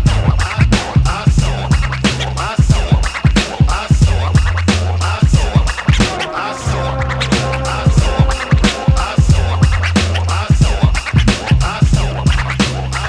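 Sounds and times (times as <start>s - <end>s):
hip hop beat: 0.0s - 13.0s
turntable scratching: 0.0s - 13.0s.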